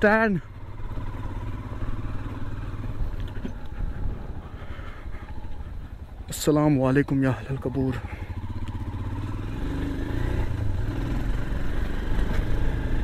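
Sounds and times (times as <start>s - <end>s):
motorcycle engine rumble: 0.0s - 13.0s
road and wind noise: 0.0s - 13.0s.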